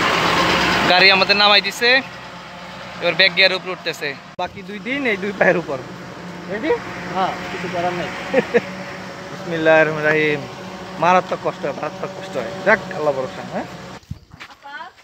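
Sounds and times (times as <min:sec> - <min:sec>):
engine idling: 0:00.0 - 0:14.0
people talking: 0:00.8 - 0:02.1, 0:03.0 - 0:15.0.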